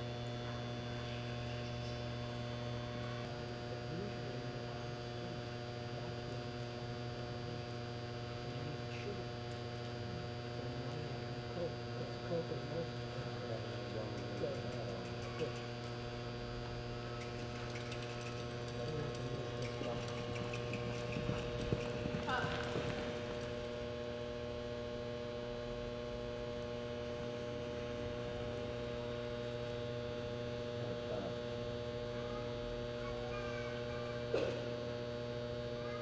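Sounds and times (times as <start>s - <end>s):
electrical mains hum: 0.0s - 36.0s.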